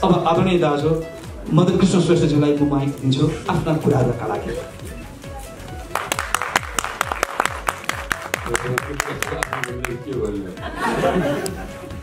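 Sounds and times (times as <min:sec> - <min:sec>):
background music: 0:00.0 - 0:12.0
audience clapping: 0:05.8 - 0:10.4.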